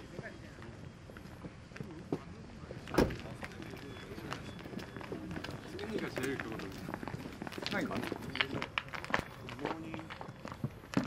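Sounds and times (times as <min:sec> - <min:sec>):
footsteps on pavement: 0:00.0 - 0:11.0
quiet indistinct chatter: 0:00.0 - 0:11.0.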